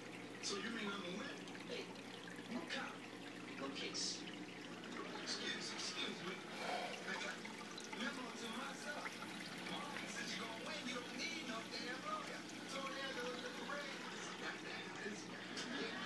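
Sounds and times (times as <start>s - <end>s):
water pouring and trickling: 0.0s - 16.0s
voices in background: 0.4s - 16.0s.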